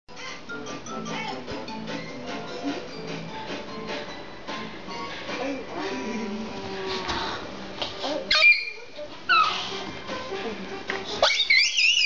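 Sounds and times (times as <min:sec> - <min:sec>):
faint television music: 0:00.1 - 0:12.0
toddler squealing with laughter: 0:08.3 - 0:09.6, 0:11.2 - 0:12.0.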